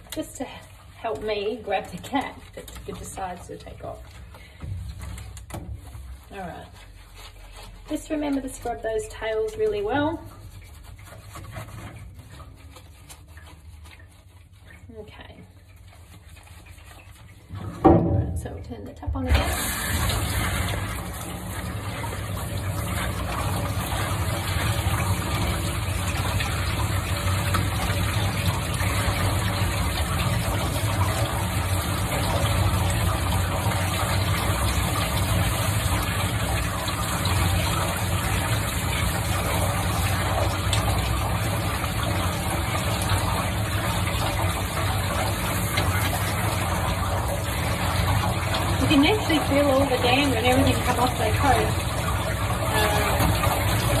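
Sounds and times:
shower sprayer water running: 0.0 - 54.0.

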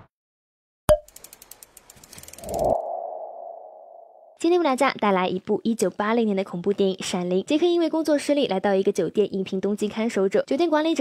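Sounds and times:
ratchet-like clicks: 1.0 - 2.7.

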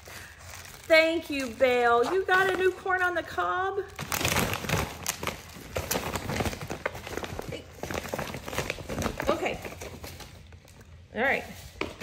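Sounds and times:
tissue paper and bag crinkling: 0.0 - 3.1, 3.8 - 11.8.

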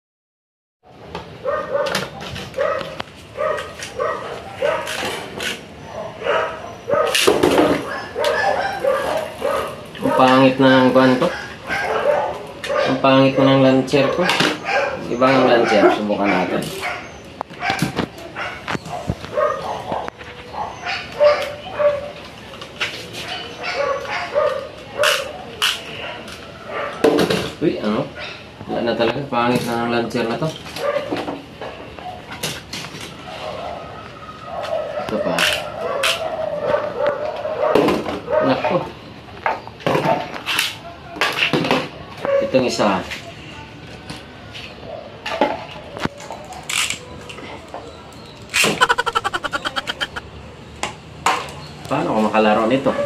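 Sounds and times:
dog yapping: 1.4 - 2.0, 2.6 - 5.2, 5.8 - 10.4, 11.2 - 22.1, 23.2 - 25.4, 34.5 - 38.6, 48.6 - 50.2.

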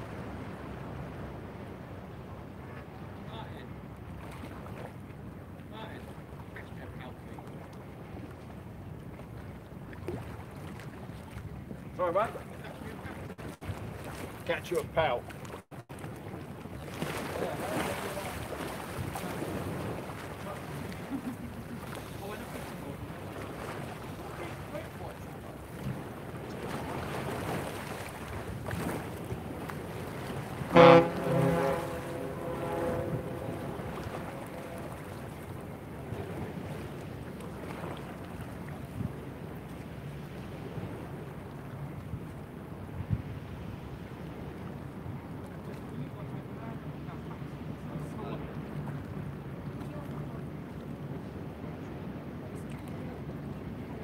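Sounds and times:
water noise: 0.0 - 54.0
wind: 0.0 - 54.0.

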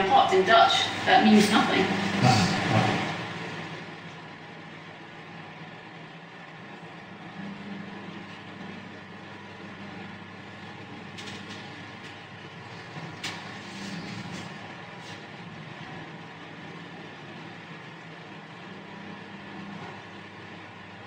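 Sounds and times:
electric fans rushing air: 0.0 - 21.0
faint motor hum: 0.0 - 21.0.

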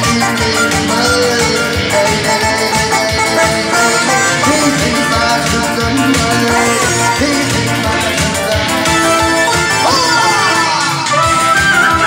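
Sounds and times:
electronic keyboard: 0.0 - 12.0
man singing into a microphone: 0.0 - 12.0
percussion rhythm: 0.0 - 12.0.

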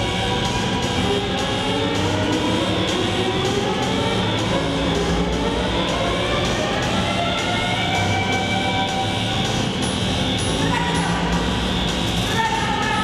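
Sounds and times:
droning cello music: 0.0 - 13.0.

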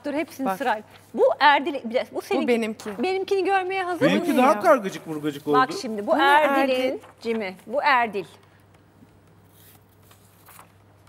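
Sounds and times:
paper sheets rustling: 4.9 - 7.8, 9.4 - 11.0.

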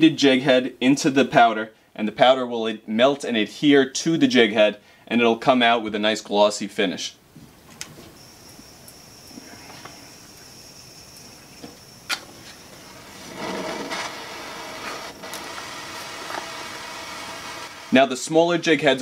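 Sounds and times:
propane torch flame hissing: 8.1 - 18.4.

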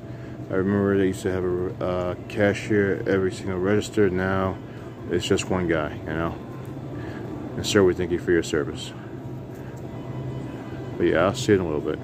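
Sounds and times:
faint ambient noise: 0.0 - 12.0
ventilation hum: 0.0 - 12.0.

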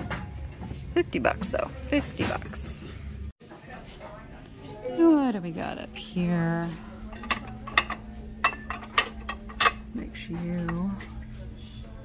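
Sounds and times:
porcelain dishes clinking: 7.1 - 11.3.

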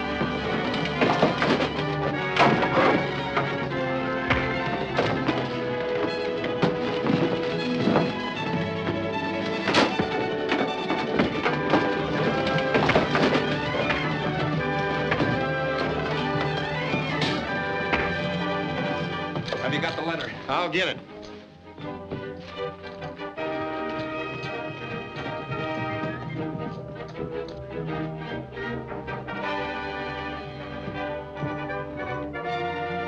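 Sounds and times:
orchestral film music: 0.0 - 33.0.

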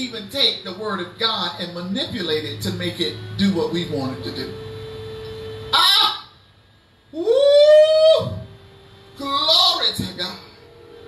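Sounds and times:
woman shouting woo: 5.8 - 6.3, 7.2 - 8.4.

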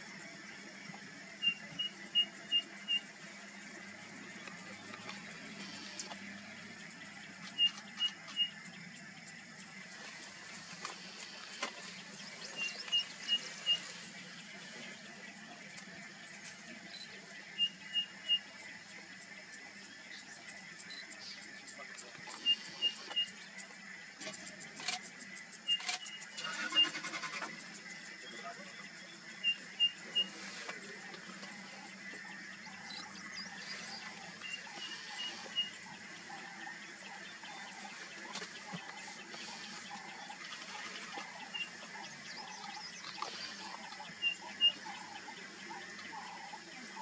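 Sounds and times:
birds calling short high notes: 32.8 - 36.4.

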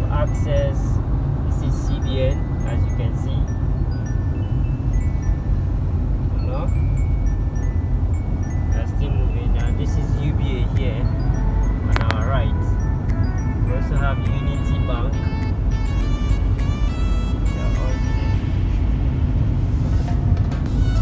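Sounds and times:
ringing note-like tones: 0.0 - 20.1
car driving low rumble: 0.0 - 21.0
music with voice: 0.0 - 21.0.

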